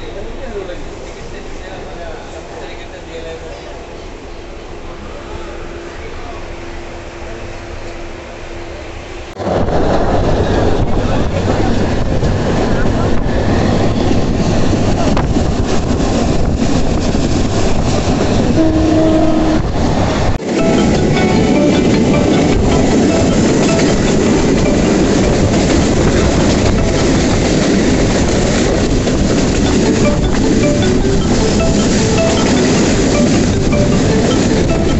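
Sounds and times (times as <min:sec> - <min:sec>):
train rumbling on rails: 0:00.0 - 0:34.9.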